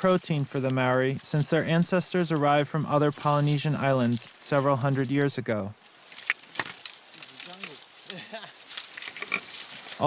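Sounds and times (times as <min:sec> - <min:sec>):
twigs and branches snapping: 0:00.0 - 0:10.0.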